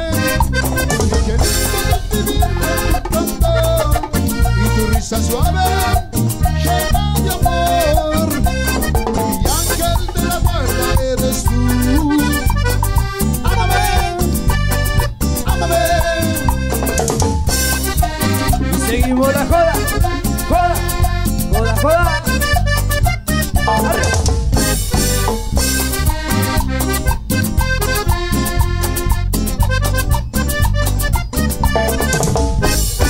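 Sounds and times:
drum kit and percussion beat: 0:00.0 - 0:33.0
sliding lead melody: 0:00.0 - 0:33.0.

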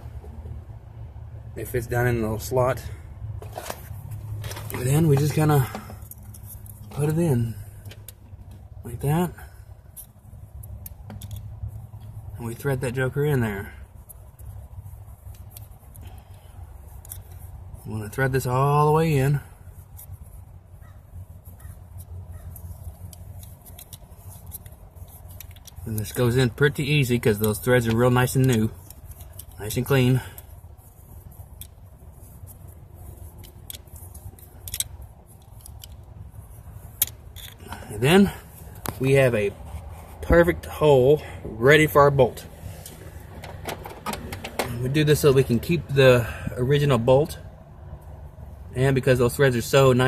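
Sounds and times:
small metal clicks and scraping: 0:03.4 - 0:40.4, 0:42.4 - 0:45.7.

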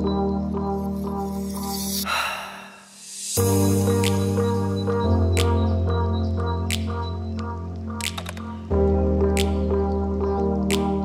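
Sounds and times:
sustained chords with low bass: 0:03.4 - 0:08.0.

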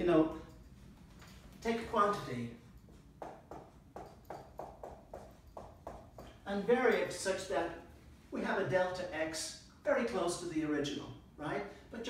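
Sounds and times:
marker writing on whiteboard: 0:01.9 - 0:07.1.

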